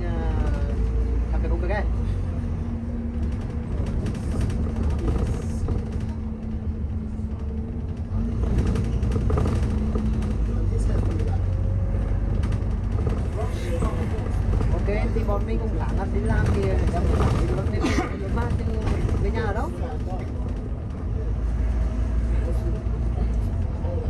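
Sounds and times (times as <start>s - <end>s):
bus engine drone: 0.0s - 24.0s
passengers talking: 0.0s - 24.0s.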